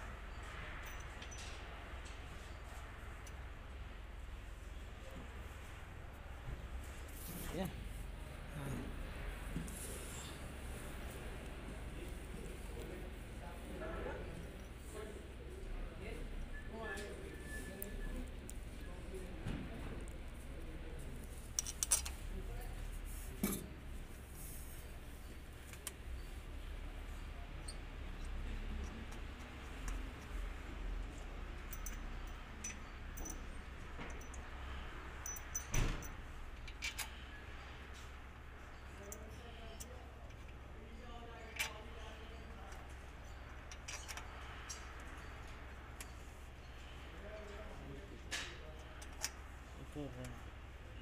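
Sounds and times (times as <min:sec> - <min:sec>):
metal bolts clinking: 0:00.4 - 0:03.5, 0:21.4 - 0:22.2, 0:31.0 - 0:37.3, 0:41.4 - 0:46.4
light metallic clicks and taps: 0:27.7 - 0:34.5.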